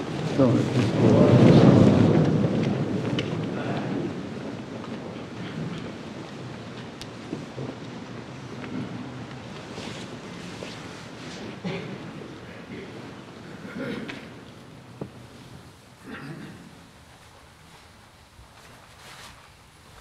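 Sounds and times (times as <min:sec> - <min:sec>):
low murmur and rustle: 0:00.0 - 0:20.0.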